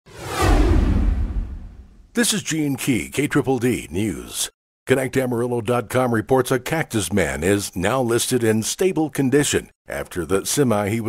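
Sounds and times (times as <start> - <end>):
whoosh sweeping down in pitch: 0.1 - 2.0
deep rumble: 0.1 - 2.1.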